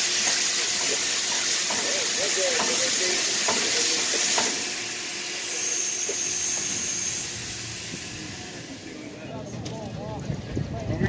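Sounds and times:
steam hissing from locomotive: 0.0 - 9.2
thin high whine: 5.4 - 9.1.

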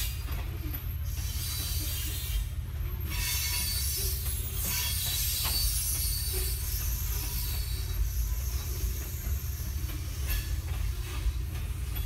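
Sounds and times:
train low rumble: 0.0 - 12.0
train wheels squealing on rails: 0.0 - 12.0
train car clacks: 2.8 - 12.0.

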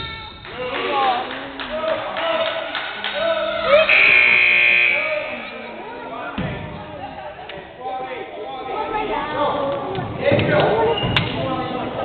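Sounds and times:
voices of players and spectators: 0.0 - 12.0
scoreboard buzzer: 3.9 - 5.6.

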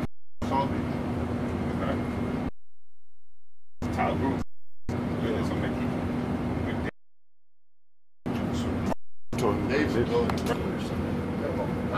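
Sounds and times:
jet cabin droning hum: 0.0 - 7.0, 8.3 - 11.9.

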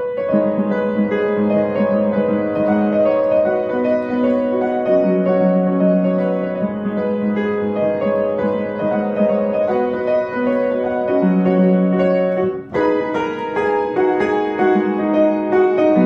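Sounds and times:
upright piano playing chords: 0.0 - 16.0.

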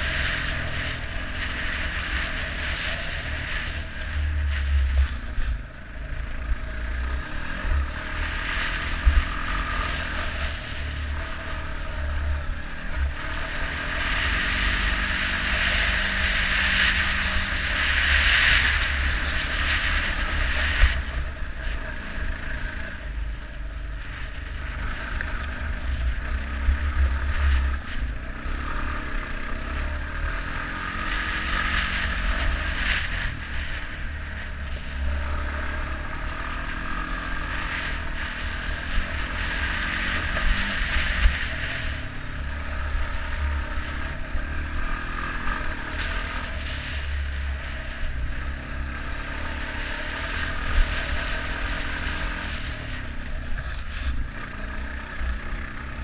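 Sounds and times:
atv engine running: 0.0 - 56.0.

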